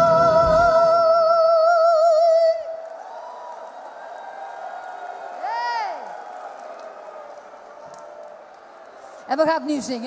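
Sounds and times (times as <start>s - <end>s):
woman singing with vibrato: 0.0s - 2.8s
audience cheering and applauding: 2.6s - 9.3s.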